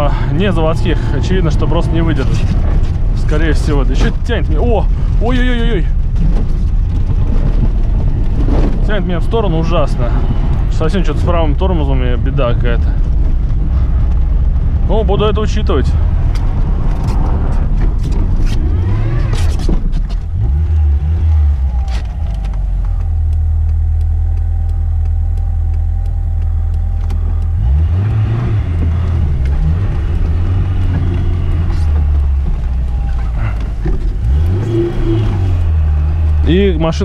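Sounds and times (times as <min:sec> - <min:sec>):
car engine pulling hard: 0:00.0 - 0:37.0
car knocking and clattering: 0:00.0 - 0:37.0.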